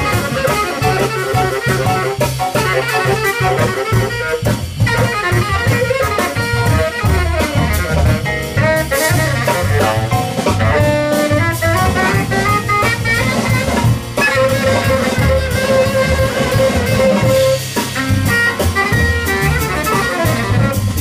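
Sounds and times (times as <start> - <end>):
double bass: 0.0 - 21.0
drums with cymbals: 0.0 - 21.0
piano: 0.0 - 21.0
tenor saxophone: 0.0 - 21.0.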